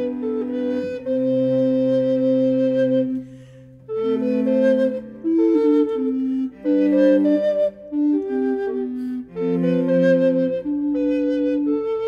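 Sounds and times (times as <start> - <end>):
recorder consort with cello: 0.0 - 12.0.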